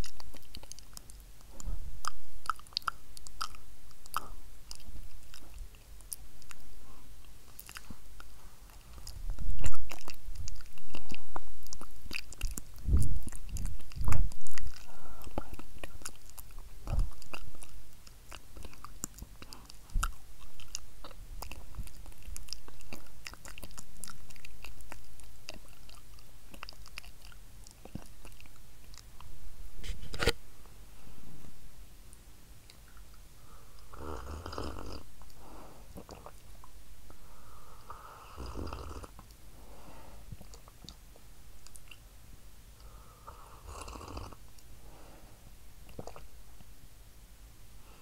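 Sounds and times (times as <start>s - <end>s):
close whispering: 0.0s - 27.0s
wet lip and tongue clicks: 0.0s - 29.3s, 41.6s - 42.1s, 45.9s - 46.7s.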